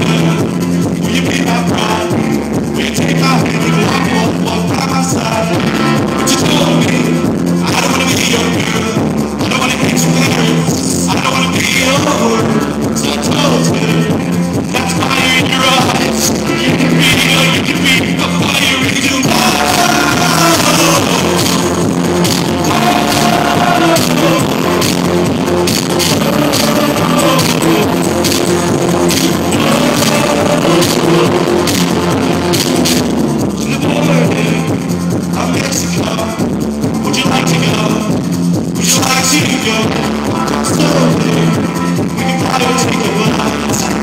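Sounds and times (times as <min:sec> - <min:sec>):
live band playing loud: 0:00.0 - 0:44.0.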